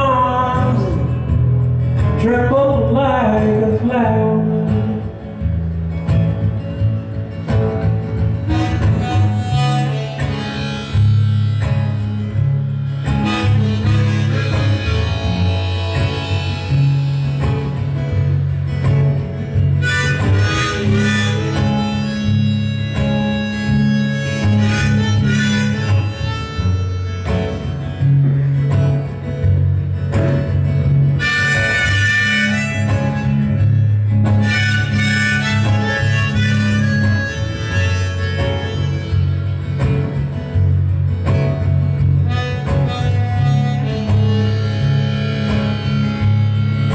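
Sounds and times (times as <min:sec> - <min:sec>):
acoustic guitar: 0:00.0 - 0:46.9
harmonica melody: 0:06.2 - 0:46.9.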